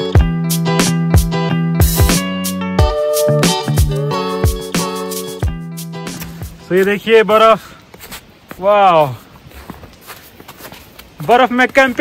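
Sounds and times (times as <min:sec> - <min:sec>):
boot footsteps on snow: 0:07.9 - 0:12.0.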